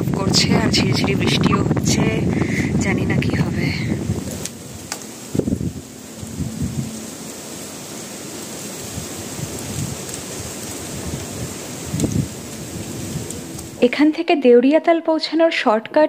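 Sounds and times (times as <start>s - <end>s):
wind buffeting microphone: 0.0s - 14.0s
light drizzle hissing: 0.4s - 14.2s.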